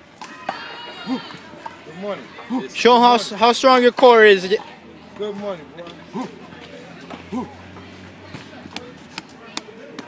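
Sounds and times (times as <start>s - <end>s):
faint background voices: 0.2s - 3.4s, 4.0s - 10.0s.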